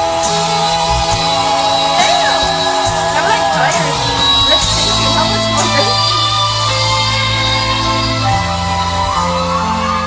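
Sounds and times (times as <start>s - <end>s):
person singing pop ballad: 0.0s - 6.8s
band and keyboard chords: 0.0s - 10.0s.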